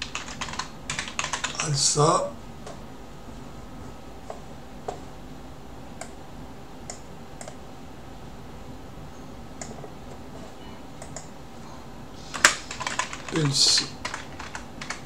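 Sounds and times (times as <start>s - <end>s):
keyboard typing: 0.0s - 1.7s, 12.3s - 15.0s
low background hum: 0.0s - 15.0s.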